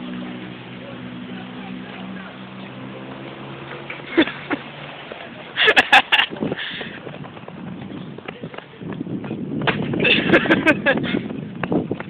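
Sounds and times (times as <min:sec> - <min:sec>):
running footsteps thumping: 0:05.0 - 0:12.0.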